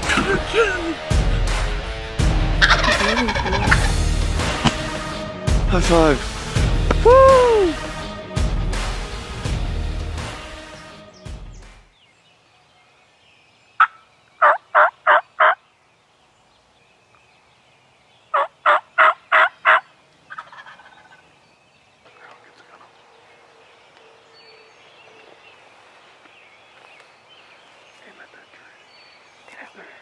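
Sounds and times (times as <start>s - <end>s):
music: 0.0s - 11.9s
turkey calls: 2.6s - 5.0s, 13.8s - 15.6s, 18.3s - 21.3s.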